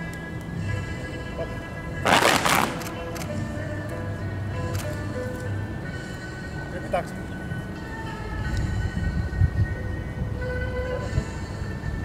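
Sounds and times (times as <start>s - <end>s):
music with sustained tones: 0.0s - 12.0s.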